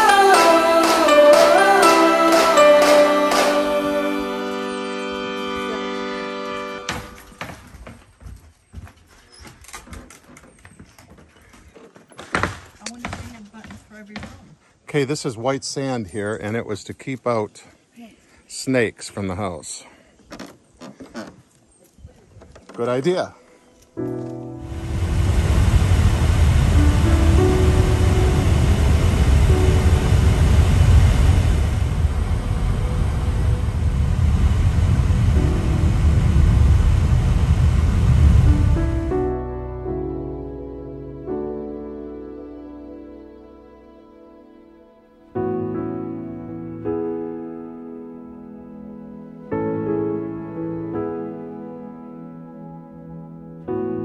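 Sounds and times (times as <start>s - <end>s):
footsteps on wooden boards: 6.8s - 14.8s
car road rumble: 24.6s - 39.2s.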